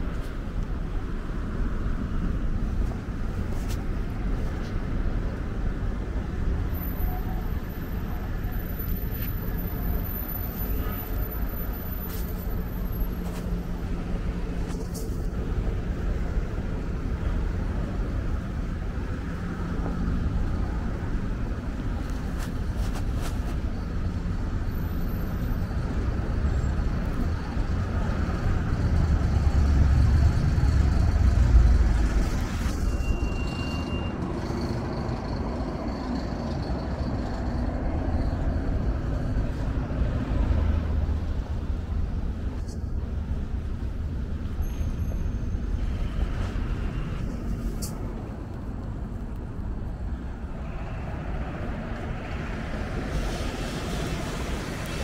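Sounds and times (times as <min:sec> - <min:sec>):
street traffic rumble: 0:00.0 - 0:55.0.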